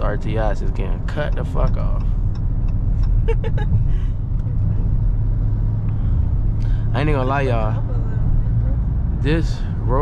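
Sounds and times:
car engine rumble in cabin: 0:00.0 - 0:10.0
road noise: 0:00.0 - 0:10.0
person laughing: 0:03.2 - 0:04.0.

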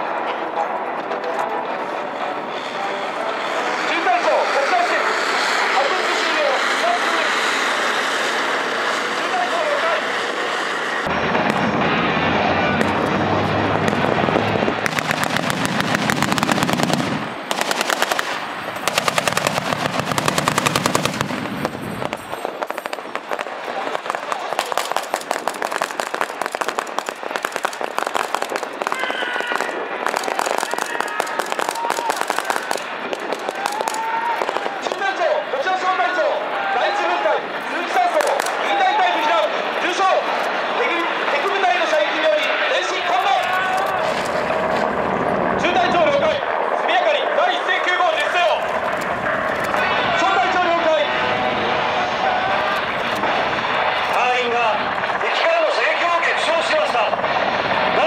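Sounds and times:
deep vehicle engine running: 0:04.7 - 0:22.4
machine gun firing blanks: 0:14.8 - 0:23.0.

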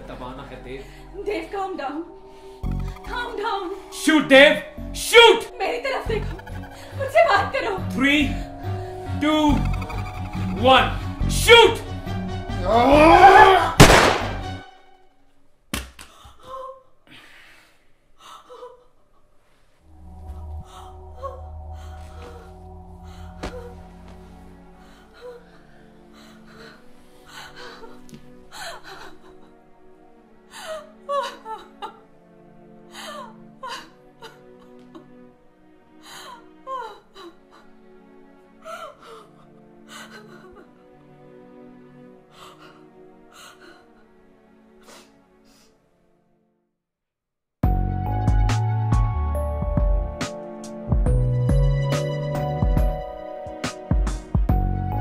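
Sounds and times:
soft background music: 0:00.0 - 0:15.7, 0:19.4 - 0:46.6, 0:47.6 - 0:55.0
woman sobbing: 0:05.5 - 0:08.5, 0:12.6 - 0:13.8, 0:18.2 - 0:19.0, 0:20.6 - 0:29.7, 0:30.5 - 0:32.1, 0:32.9 - 0:35.2, 0:36.0 - 0:37.7, 0:38.6 - 0:40.8
woman gasping: 0:20.4 - 0:29.5.

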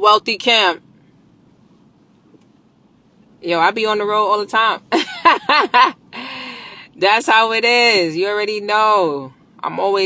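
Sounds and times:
woman laughing: 0:04.9 - 0:06.4
breathy out-breath: 0:06.2 - 0:06.9.

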